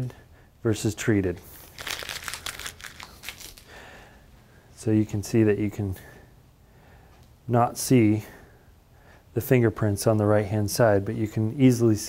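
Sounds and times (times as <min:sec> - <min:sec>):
steel sheet crinkling: 0:01.6 - 0:03.7.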